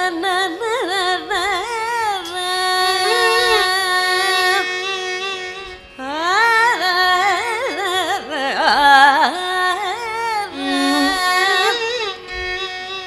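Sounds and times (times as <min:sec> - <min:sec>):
woman singing ornamented melody: 0:00.0 - 0:04.8, 0:06.0 - 0:12.0.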